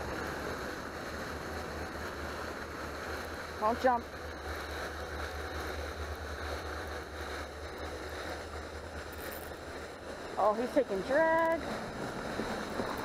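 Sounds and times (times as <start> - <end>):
fountains spraying: 0.0 - 13.0
wind rumbling on microphone: 0.0 - 13.0.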